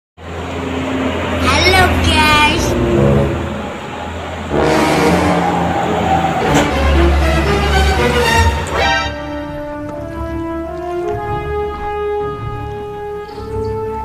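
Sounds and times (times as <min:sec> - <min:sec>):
engine and tyre rumble: 0:00.2 - 0:14.0
vehicles passing: 0:00.2 - 0:14.0.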